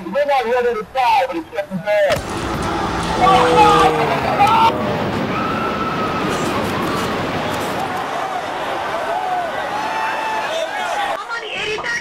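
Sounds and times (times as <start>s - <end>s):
dense steady background noise: 0.1s - 12.0s
people crying out and wailing: 2.1s - 8.0s.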